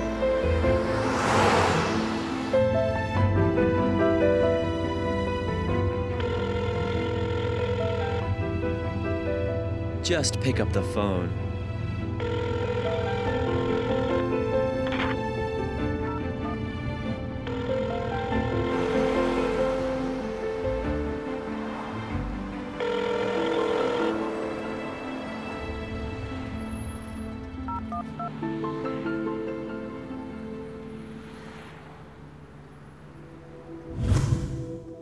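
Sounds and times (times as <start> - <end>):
soft background music: 0.0 - 35.0
telephone ringback tone: 6.2 - 8.2, 12.2 - 14.2, 17.4 - 18.5, 22.7 - 24.9, 27.7 - 28.4.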